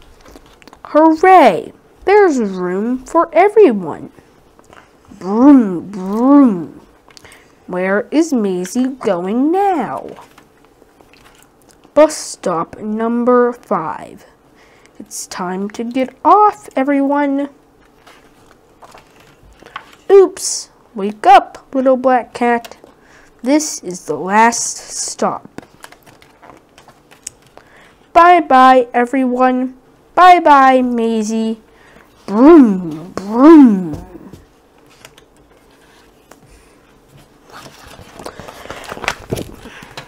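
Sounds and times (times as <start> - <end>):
paper page turning: 0.0 - 0.9, 9.9 - 11.9, 17.8 - 20.1, 25.6 - 27.6, 34.8 - 36.4, 37.4 - 40.0.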